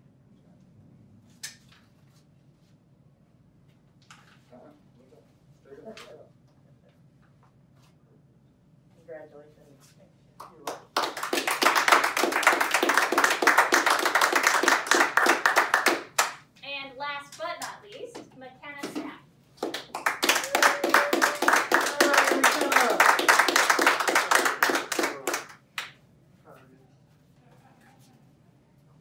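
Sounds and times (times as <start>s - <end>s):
group clapping in applause: 10.4s - 16.5s, 17.6s - 26.0s.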